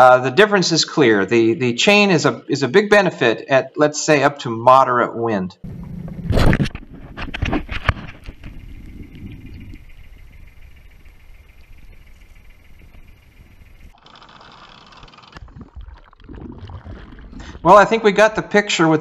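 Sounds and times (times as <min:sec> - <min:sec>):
low rumble: 0:07.9 - 0:14.0.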